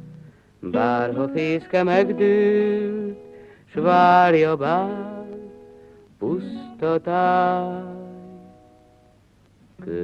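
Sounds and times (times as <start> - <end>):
acoustic guitar: 0.0 - 10.0
man singing a slow ballad: 0.6 - 8.5.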